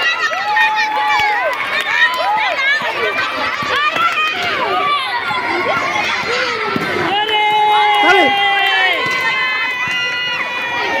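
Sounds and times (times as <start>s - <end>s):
children cheering: 0.0s - 11.0s.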